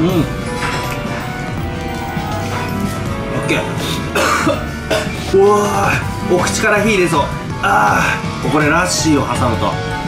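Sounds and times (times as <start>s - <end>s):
background music: 0.0s - 10.0s
man coughing: 4.0s - 5.3s.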